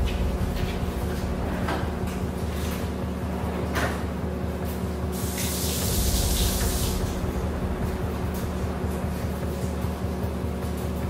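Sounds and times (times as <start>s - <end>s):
background music: 0.0s - 11.0s
faucet water hissing into sink: 5.2s - 7.2s.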